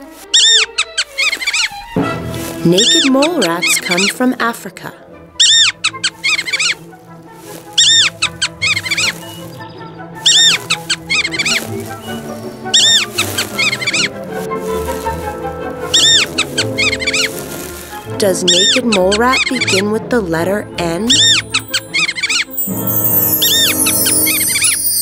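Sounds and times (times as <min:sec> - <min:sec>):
mole rats squeaking: 0:00.0 - 0:01.9, 0:02.7 - 0:04.2, 0:05.4 - 0:06.8, 0:07.5 - 0:20.0, 0:20.8 - 0:25.0
classical background music: 0:00.0 - 0:25.0.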